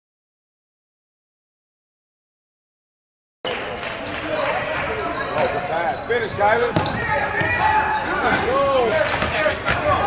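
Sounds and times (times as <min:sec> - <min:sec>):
echoing crowd voices: 0:03.5 - 0:10.0.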